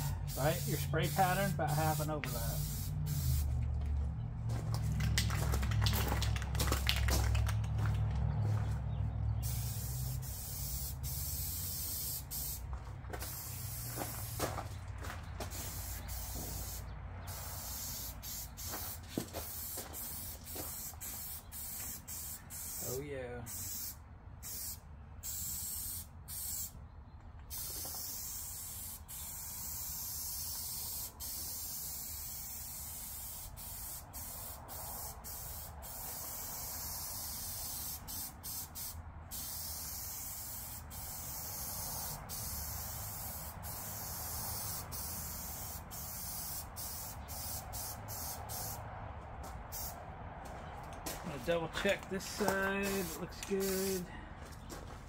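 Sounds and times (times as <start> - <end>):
aerosol spray can hissing: 0.1 - 3.5, 9.4 - 12.6, 13.2 - 14.4, 15.5 - 26.7, 27.5 - 48.8, 49.7 - 50.0, 52.4 - 54.0.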